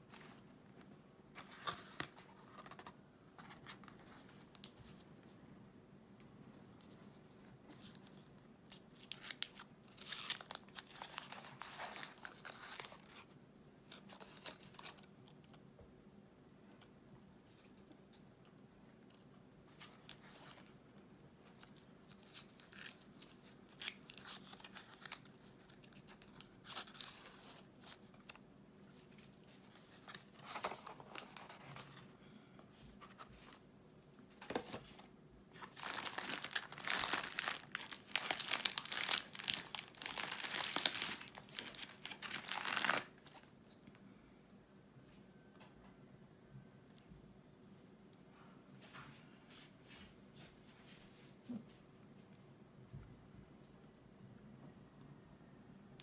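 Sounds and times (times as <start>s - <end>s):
wrapper crinkling: 35.6s - 43.2s.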